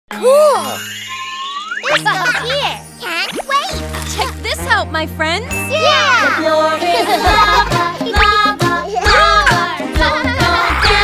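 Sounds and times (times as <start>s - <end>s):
children's background music: 0.1s - 11.0s
whistle-like tone sliding upward: 0.4s - 2.1s.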